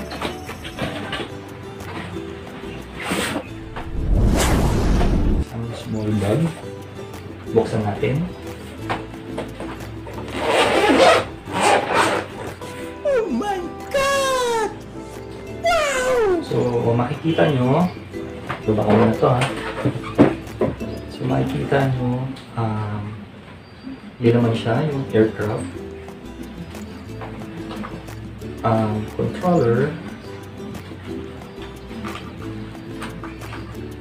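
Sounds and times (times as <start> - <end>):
background music: 0.0 - 22.4, 24.3 - 34.0
person speaking: 13.0 - 14.8, 15.6 - 17.6.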